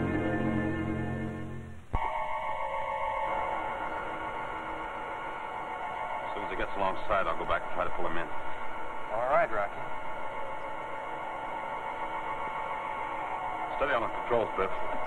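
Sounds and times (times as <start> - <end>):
electronic hum of held tones: 0.0 - 15.0
voice over radio: 6.3 - 8.3, 13.7 - 15.0.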